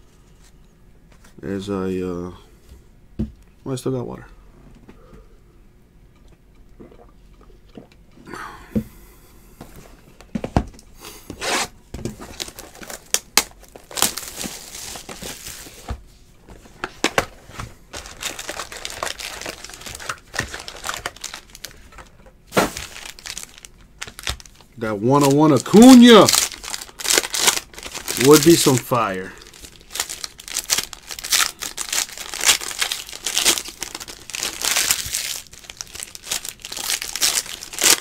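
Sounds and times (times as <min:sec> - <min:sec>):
packaging crinkling and tearing: 0:12.2 - 0:15.9, 0:17.0 - 0:38.0.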